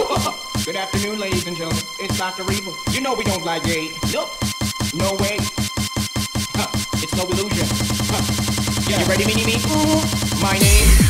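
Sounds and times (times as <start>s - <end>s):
electronic dance music: 0.0s - 11.0s
pitched vocal line: 10.6s - 11.0s.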